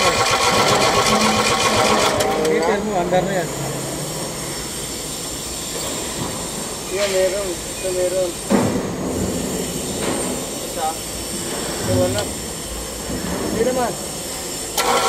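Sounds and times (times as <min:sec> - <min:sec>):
diesel engine running: 0:00.0 - 0:04.5.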